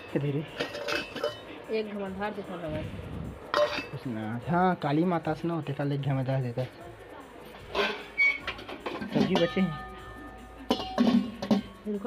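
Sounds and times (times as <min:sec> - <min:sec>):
steel lid clinking on pot: 0:00.0 - 0:01.6, 0:03.5 - 0:04.0, 0:07.7 - 0:11.8.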